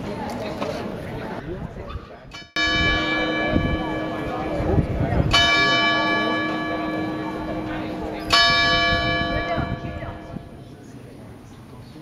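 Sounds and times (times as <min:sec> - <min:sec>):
clock bell striking: 0:02.4 - 0:10.6.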